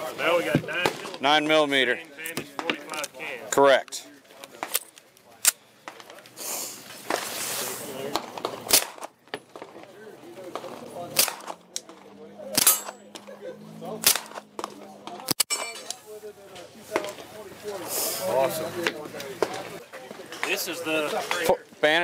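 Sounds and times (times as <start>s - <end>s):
suppressed pistol shots: 8.7s - 9.1s, 11.1s - 11.6s, 12.5s - 13.0s, 14.0s - 14.7s.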